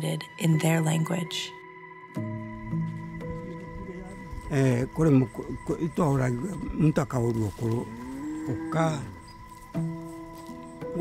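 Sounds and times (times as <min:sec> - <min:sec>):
soft background music: 0:00.0 - 0:11.0
man speaking: 0:03.5 - 0:09.2.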